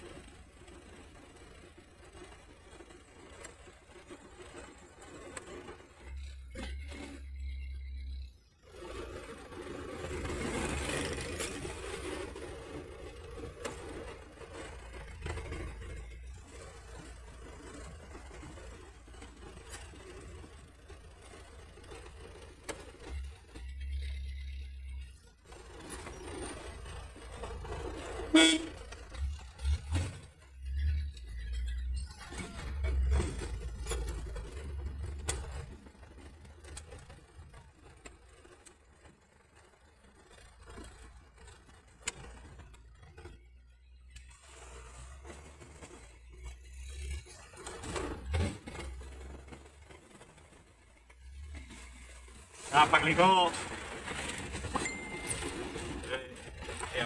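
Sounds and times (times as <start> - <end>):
road noise: 0.0 - 57.0
truck engine running: 0.0 - 57.0
truck horn toot: 28.2 - 29.3.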